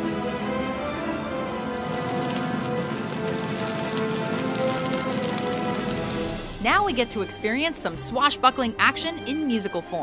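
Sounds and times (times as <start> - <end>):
crackle of burning flames: 0.0 - 6.7
orchestral film score: 0.0 - 10.0.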